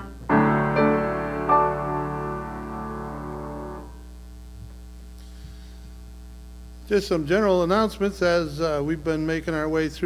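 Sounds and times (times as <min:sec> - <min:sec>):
piano notes: 0:00.0 - 0:04.0
electrical mains hum: 0:00.0 - 0:10.0
man speaking: 0:06.9 - 0:10.0.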